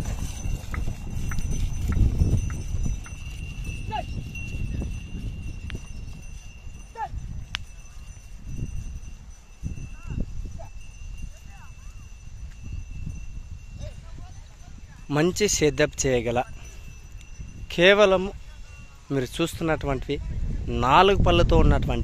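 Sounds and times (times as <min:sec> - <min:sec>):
harrow dragging and hooves: 0:00.0 - 0:22.0.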